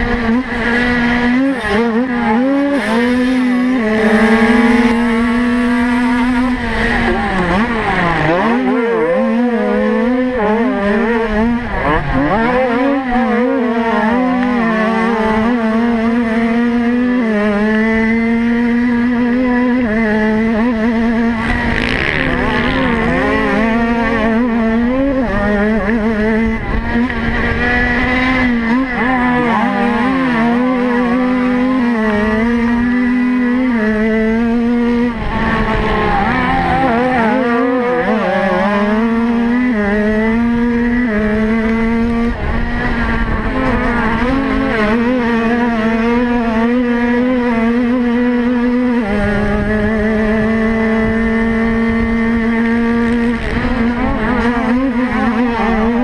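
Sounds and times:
motocross bike engine revving: 0.0s - 56.0s.

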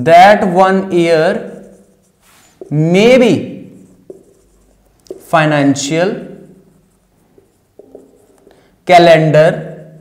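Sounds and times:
marker strokes on whiteboard: 0.8s - 8.8s
marker tap on whiteboard: 4.0s - 5.3s, 7.4s - 8.6s.

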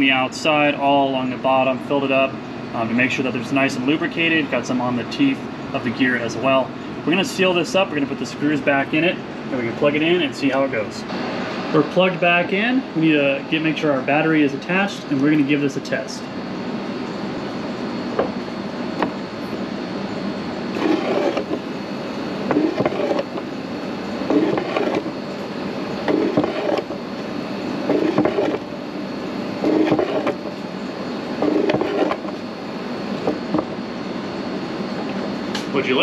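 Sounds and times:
wiper motor whirring: 16.7s - 35.4s.

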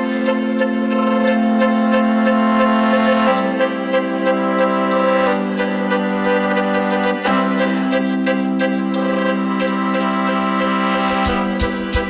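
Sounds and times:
layered vocal chord pad: 0.0s - 12.0s.

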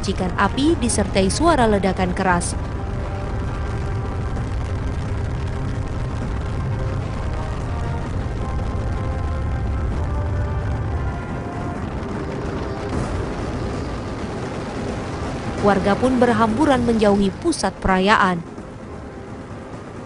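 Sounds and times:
background music: 0.0s - 20.0s
firecrackers crackling: 0.0s - 20.0s.

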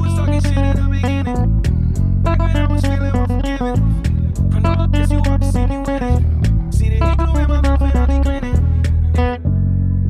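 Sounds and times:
low sustained bass line: 0.0s - 10.0s
plucked bass melody: 0.0s - 10.0s.

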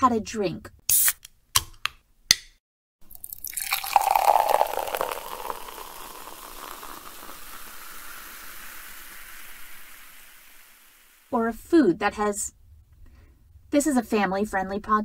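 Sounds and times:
drink pouring into glass: 3.0s - 11.2s.

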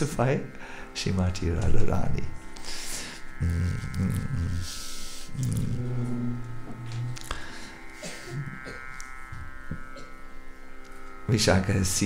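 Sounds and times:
drone of held musical tones: 0.0s - 12.0s
soft vocal hum: 2.6s - 10.4s.

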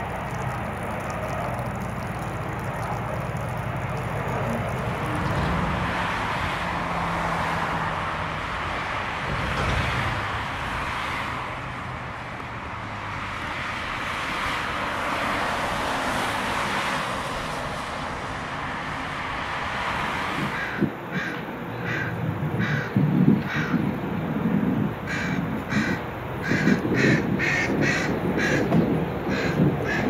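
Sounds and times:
car engine hum: 0.0s - 7.4s
tyres on wet road: 0.0s - 30.0s.

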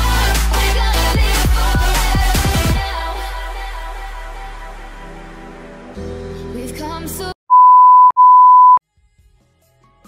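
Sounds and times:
loud electronic beeps: 7.5s - 8.8s.

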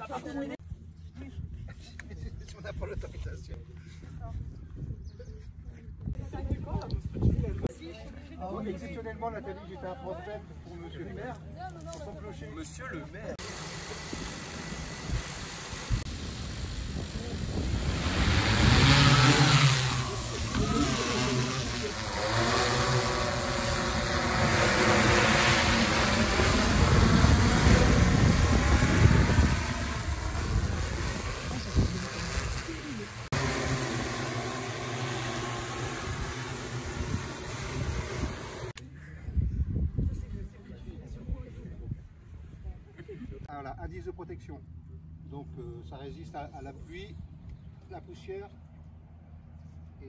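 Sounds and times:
drone propellers buzzing: 13.4s - 38.8s.

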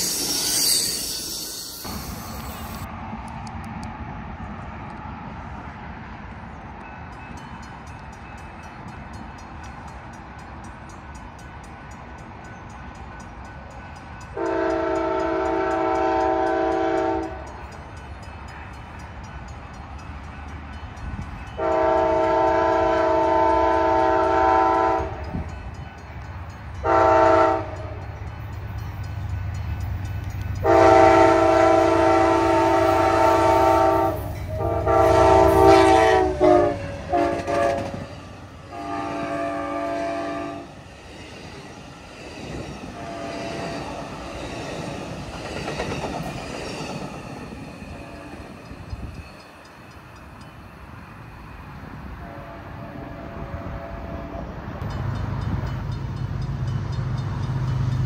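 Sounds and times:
low rumble of train: 0.0s - 58.0s
locomotive air horn blasts: 14.4s - 17.4s, 21.6s - 25.4s, 26.8s - 28.0s, 30.6s - 38.1s, 38.7s - 40.7s, 43.0s - 43.8s, 52.2s - 54.6s.

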